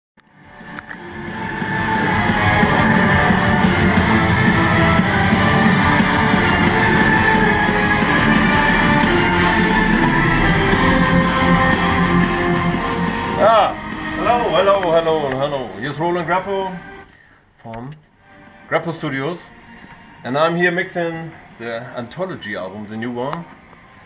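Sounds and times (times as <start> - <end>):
heavy metal music: 0.3 - 17.1, 18.3 - 24.0.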